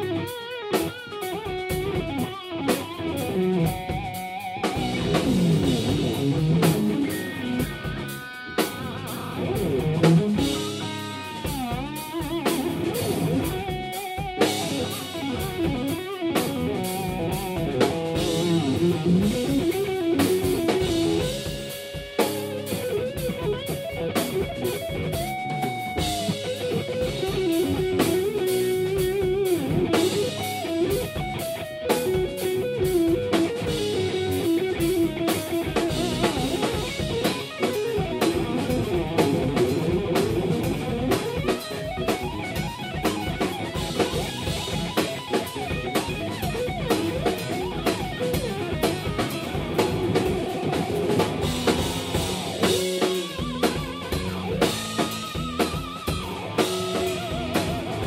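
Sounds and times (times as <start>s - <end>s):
drum kit: 0.0s - 58.0s
lead electric guitar: 0.0s - 58.0s.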